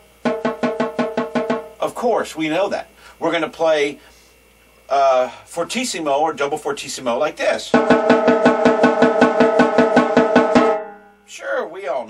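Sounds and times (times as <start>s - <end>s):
snare drum roll: 0.2s - 1.9s, 7.7s - 10.9s.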